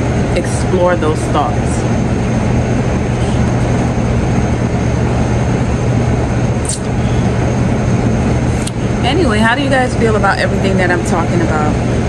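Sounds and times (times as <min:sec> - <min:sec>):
low droning machine hum: 0:00.0 - 0:12.0
short clicks: 0:06.6 - 0:06.9.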